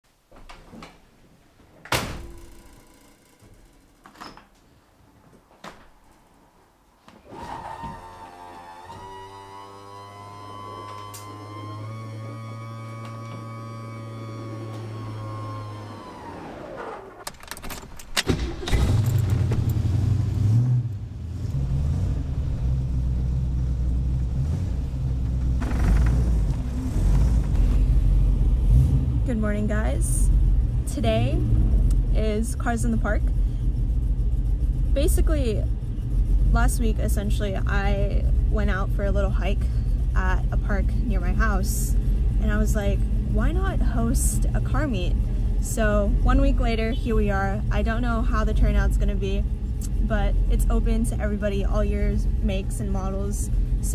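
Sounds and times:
steady held tone: 1.9 - 4.3, 7.9 - 17.2
car engine starting and rumbling: 7.3 - 53.9.

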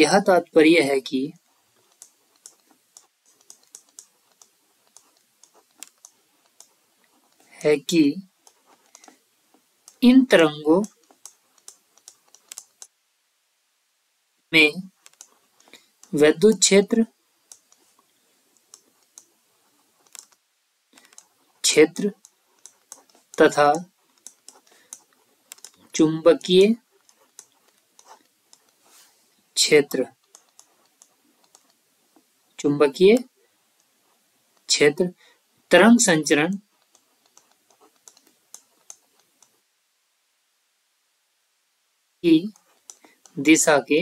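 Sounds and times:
stylus tapping on tablet: 1.4 - 7.5, 8.4 - 10.1, 10.7 - 13.0, 14.9 - 16.7, 17.4 - 20.4, 21.0 - 28.8, 30.0 - 32.3, 36.6 - 39.6, 42.5 - 43.4.

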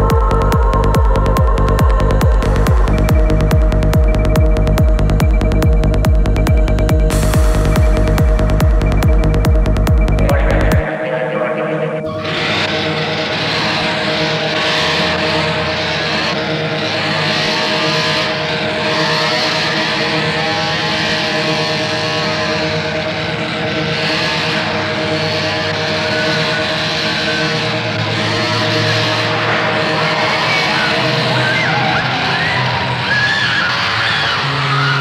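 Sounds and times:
dark psytrance music: 0.0 - 35.0
held droning pitch: 0.0 - 35.0
chainsaw-like revving sample: 12.2 - 33.0.

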